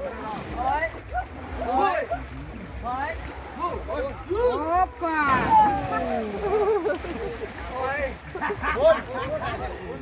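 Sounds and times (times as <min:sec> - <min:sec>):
people calling and talking: 0:00.0 - 0:10.0.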